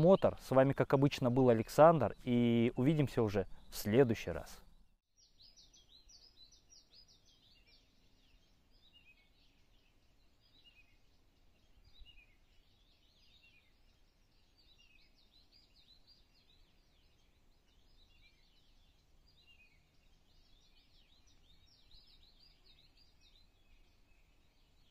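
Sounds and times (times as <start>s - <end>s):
faint birdsong chirps: 0.0s - 24.9s.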